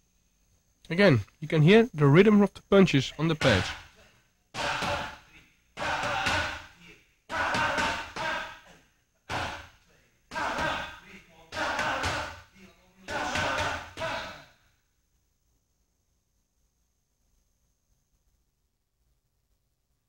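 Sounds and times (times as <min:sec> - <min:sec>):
boxing gloves striking pads: 0:03.4 - 0:03.9, 0:04.6 - 0:05.2, 0:05.8 - 0:06.7, 0:07.3 - 0:08.6, 0:09.3 - 0:09.7, 0:10.3 - 0:11.0, 0:11.6 - 0:12.4, 0:13.1 - 0:14.2.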